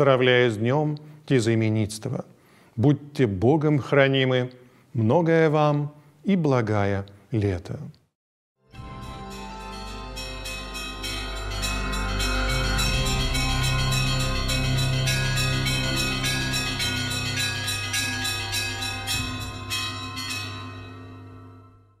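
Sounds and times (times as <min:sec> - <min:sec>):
chiming bell music: 0:08.7 - 0:22.0
steady low tone: 0:08.9 - 0:20.2.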